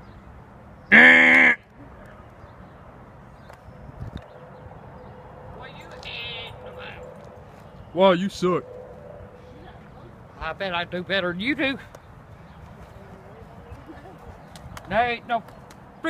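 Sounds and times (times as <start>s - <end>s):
loud flat cry: 0.9s - 1.6s.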